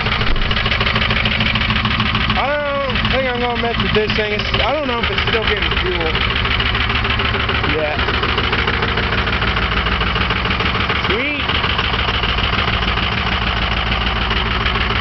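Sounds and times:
truck engine idling: 0:00.0 - 0:15.0.

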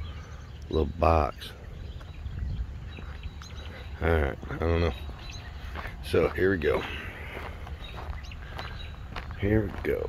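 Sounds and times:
small birds chirping: 0:00.0 - 0:10.0
steady low rumble: 0:00.0 - 0:10.0.

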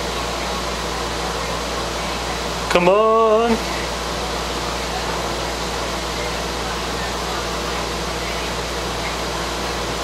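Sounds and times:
cooling fans running: 0:00.0 - 0:10.0.

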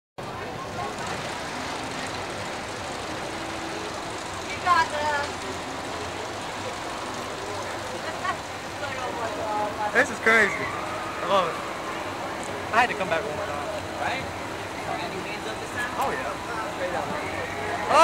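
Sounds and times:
people's voices: 0:00.2 - 0:18.0
steady background din: 0:00.2 - 0:18.0.

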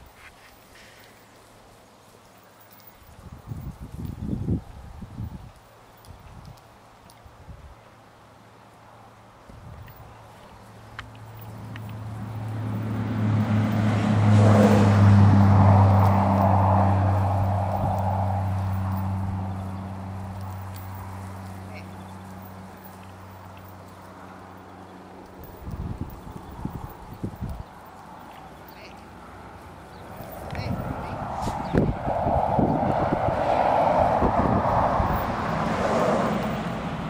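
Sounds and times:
dull low bumps: 0:09.5 - 0:28.6, 0:29.6 - 0:37.0
engine drone passing by: 0:10.1 - 0:37.0.

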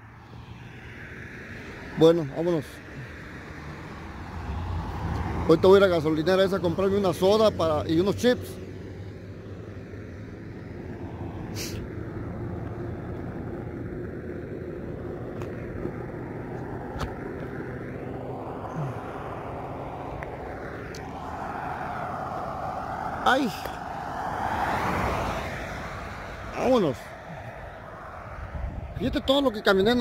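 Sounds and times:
truck engine and tyre rumble: 0:00.0 - 0:30.0.

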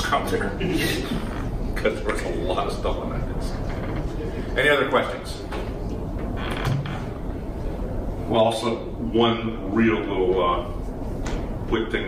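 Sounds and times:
low room rumble: 0:00.0 - 0:12.0
furniture creaking: 0:01.0 - 0:01.6, 0:03.4 - 0:04.2, 0:06.2 - 0:07.4.

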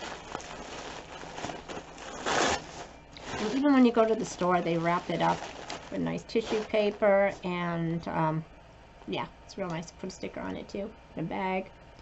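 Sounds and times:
tissue paper and clothing rustling: 0:00.0 - 0:07.8.

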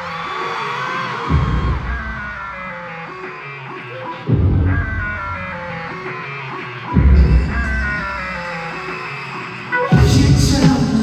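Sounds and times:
pop music over sound system: 0:00.0 - 0:11.0.

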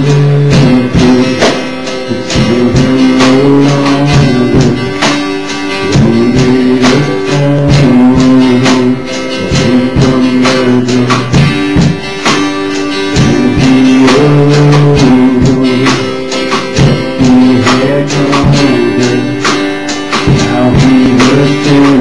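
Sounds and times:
strummed guitar song: 0:00.0 - 0:22.0.

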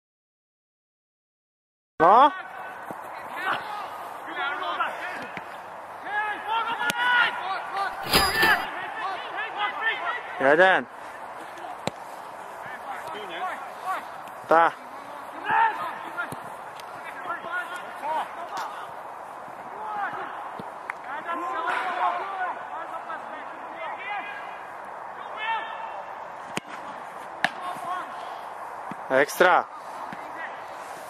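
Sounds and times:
voices talking and calling: 0:02.0 - 0:31.0.

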